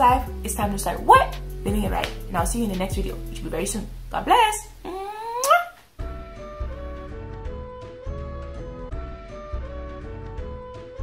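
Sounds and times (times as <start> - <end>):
beat music: 0.0 - 3.5.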